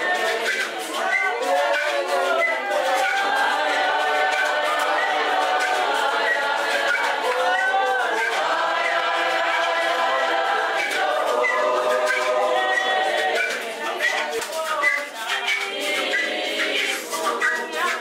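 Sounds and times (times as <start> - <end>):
choir singing unaccompanied: 0.0 - 18.0.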